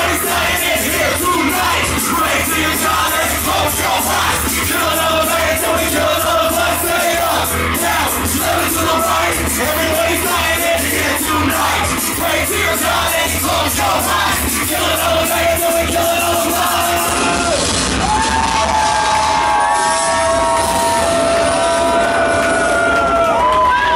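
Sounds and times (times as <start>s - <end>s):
rap beat over loudspeakers: 0.0s - 17.9s
crowd shouting: 0.0s - 23.9s.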